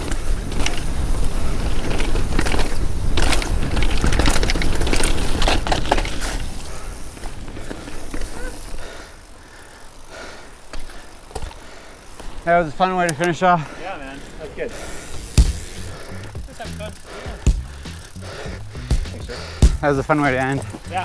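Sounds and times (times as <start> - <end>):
bike rattling clicks: 0.0 - 21.0
bike tyre noise on dirt: 0.0 - 21.0.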